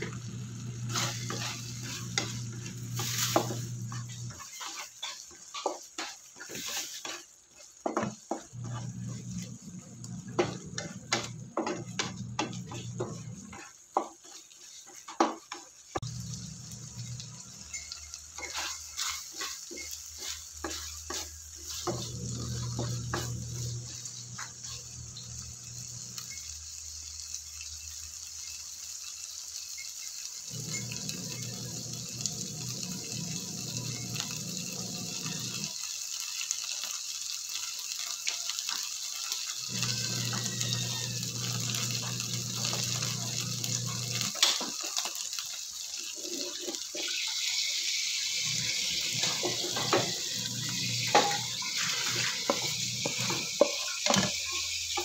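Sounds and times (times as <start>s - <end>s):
food sizzling in a frying pan: 0.0s - 55.0s
spatula scraping and tapping pan: 0.8s - 16.1s, 16.9s - 26.4s, 38.7s - 45.2s, 46.0s - 47.3s, 48.5s - 55.0s.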